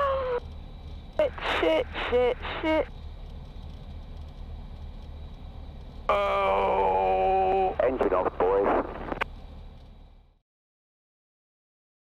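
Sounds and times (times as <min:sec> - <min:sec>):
aircraft engine idling: 0:00.0 - 0:10.4
person speaking: 0:01.2 - 0:02.9
person groaning: 0:06.1 - 0:07.8.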